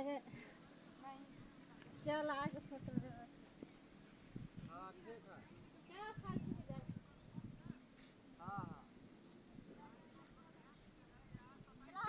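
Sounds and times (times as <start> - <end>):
faint voices: 4.6 - 12.0.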